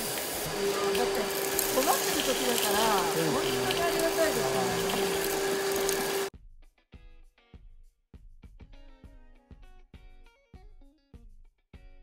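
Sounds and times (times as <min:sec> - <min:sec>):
vacuum cleaner humming: 0:00.0 - 0:06.3.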